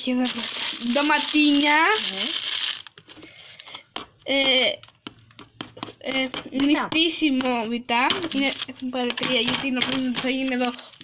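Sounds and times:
plastic bags crinkling: 0.0 - 3.8, 7.6 - 11.0.

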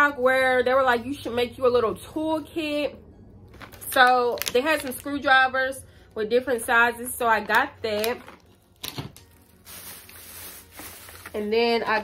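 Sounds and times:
plastic packaging clicks: 3.5 - 5.1, 7.4 - 11.4
plastic bag rustling: 8.0 - 12.0.

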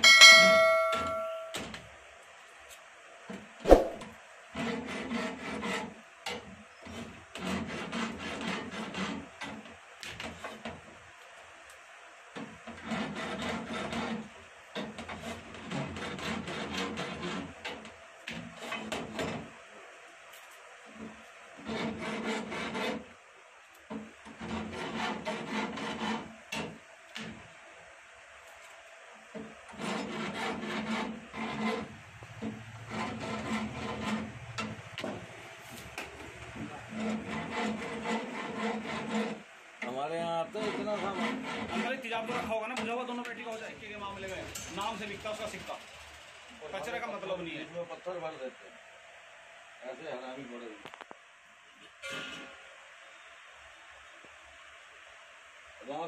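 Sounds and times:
hand file rasping on metal: 4.5 - 6.0, 6.8 - 9.7, 12.6 - 17.9, 21.6 - 23.1, 24.3 - 26.3, 29.7 - 34.7, 36.6 - 39.4, 40.5 - 42.6.

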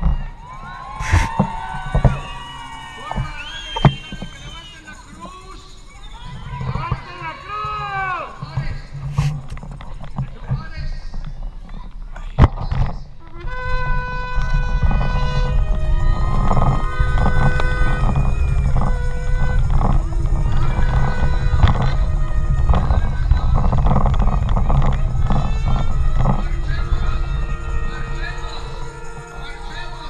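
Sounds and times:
sharp knock: 1.0 - 1.5
wind buffeting microphone: 12.6 - 30.0
music with long held notes: 13.2 - 30.0.

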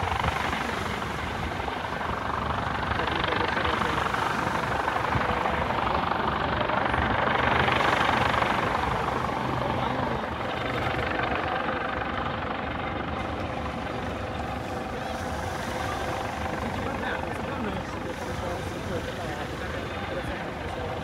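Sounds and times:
helicopter flying overhead: 0.0 - 21.0.

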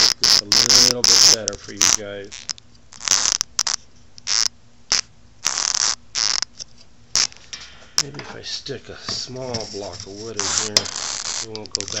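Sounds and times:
faint steady hum: 0.0 - 12.0
phone mount scraping and rubbing: 9.1 - 12.0.

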